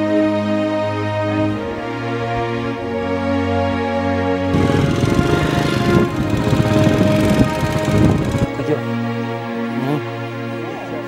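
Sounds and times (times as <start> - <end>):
background music: 0.0 - 11.0
small motorcycle engine running: 4.5 - 9.0.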